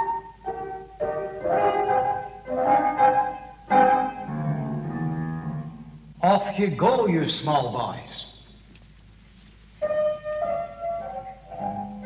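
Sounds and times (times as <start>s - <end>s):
upright piano notes and chords: 0.0s - 6.4s, 9.8s - 12.0s.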